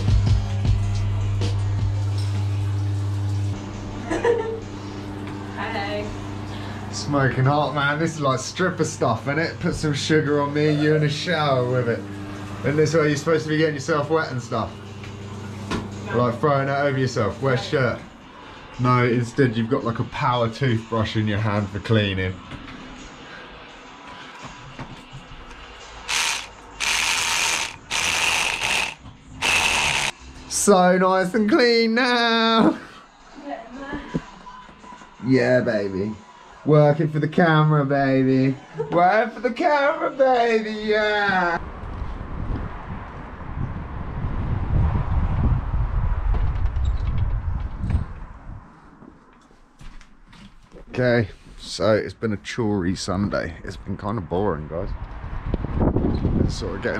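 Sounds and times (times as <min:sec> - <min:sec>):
electric scrubber brush motor whirring: 0:10.2 - 0:13.5, 0:14.5 - 0:16.2, 0:26.1 - 0:30.2
wind buffeting microphone: 0:41.6 - 0:48.7, 0:54.9 - 0:56.6.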